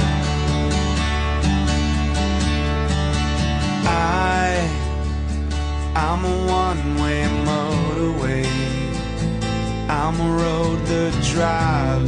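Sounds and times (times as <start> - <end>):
rock song with acoustic guitar: 0.0 - 12.0.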